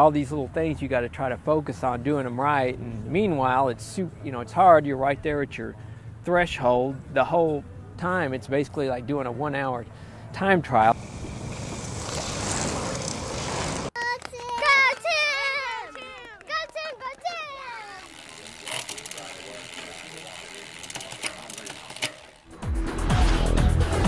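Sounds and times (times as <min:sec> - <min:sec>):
noisy wash: 0:10.8 - 0:13.9
children shouting and cheering: 0:14.0 - 0:18.0
scattered clicks: 0:18.0 - 0:22.5.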